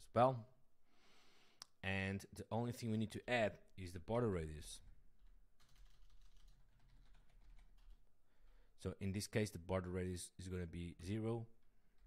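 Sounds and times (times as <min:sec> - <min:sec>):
keyboard typing: 0:05.2 - 0:08.0.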